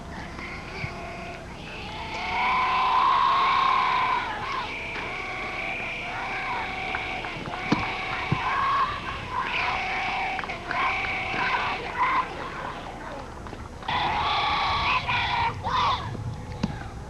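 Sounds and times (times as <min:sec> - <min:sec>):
children cheering: 0:01.7 - 0:13.2, 0:13.9 - 0:16.1.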